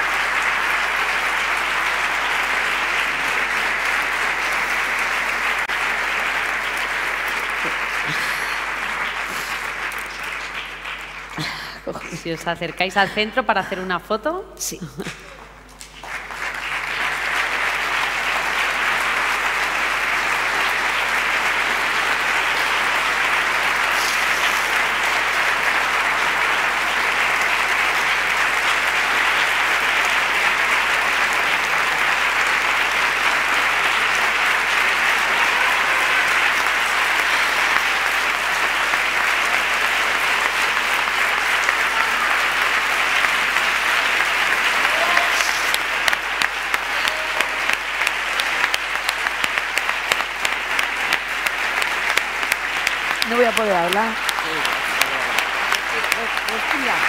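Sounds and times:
audience applauding: 0.0 - 14.2, 15.1 - 57.0.

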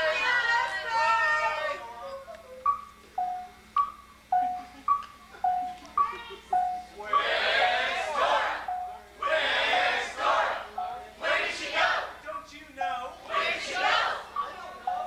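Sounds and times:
group of voices shouting: 0.0 - 2.0, 7.1 - 12.2, 13.2 - 15.0.

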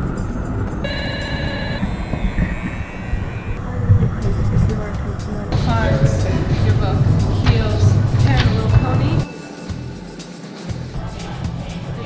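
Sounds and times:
street traffic rumble: 0.0 - 12.0
short steady tone: 0.8 - 3.6
voices: 0.8 - 9.6, 10.8 - 12.0.

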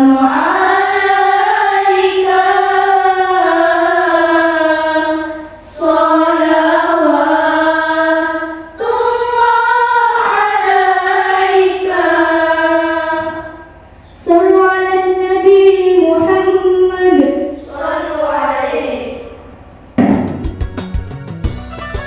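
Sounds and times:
girls singing in unison: 0.0 - 19.4.

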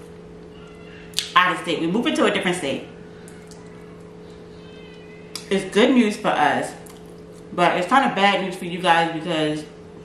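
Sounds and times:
steady low hum: 0.0 - 10.0
faint high-pitched wavering cry: 0.5 - 1.2, 3.0 - 5.4.

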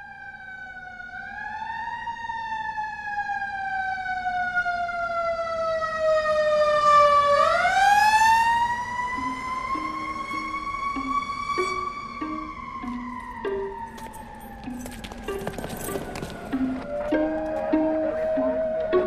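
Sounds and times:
emergency vehicle siren wailing: 0.0 - 19.0.

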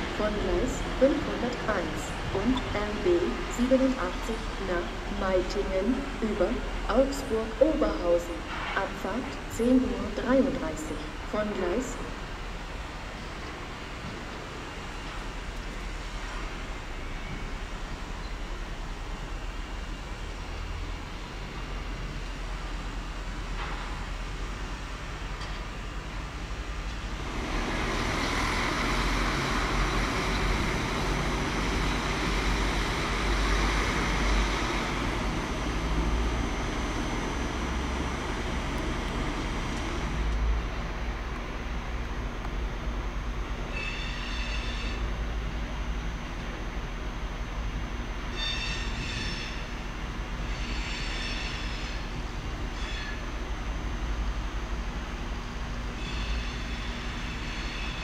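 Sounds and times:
diesel railcar humming: 0.0 - 58.0
high-speed train rushing: 0.0 - 58.0
short high squealing tones: 43.7 - 45.1, 48.3 - 49.6, 52.7 - 53.2, 56.0 - 58.0.

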